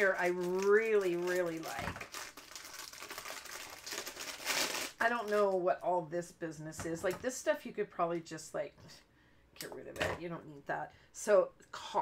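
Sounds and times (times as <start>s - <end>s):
plastic bag crinkling: 0.0s - 5.6s.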